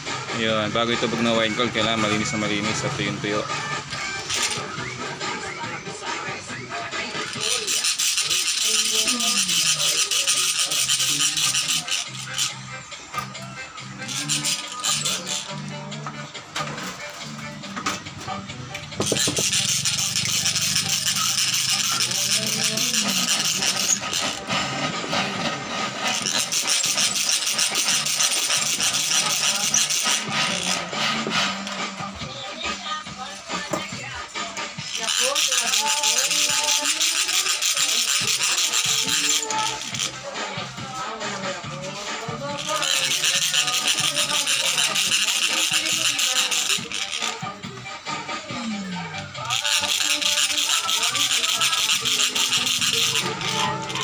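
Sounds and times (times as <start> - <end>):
person singing: 1.1 - 12.6, 13.2 - 54.0
shaker rattle: 4.2 - 4.9, 6.8 - 15.8, 18.8 - 32.1, 34.8 - 40.8, 41.9 - 47.6, 49.4 - 54.0
small motor humming: 18.9 - 24.8, 49.6 - 54.0.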